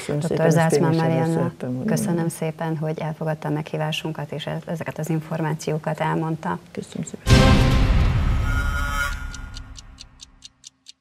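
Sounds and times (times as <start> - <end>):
clock-like ticks: 9.0 - 11.0.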